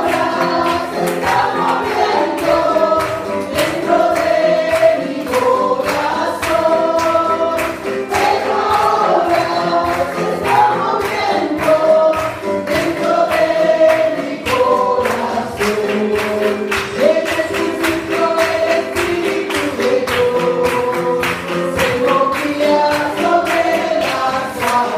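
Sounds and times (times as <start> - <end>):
congregation singing: 0.0 - 24.9.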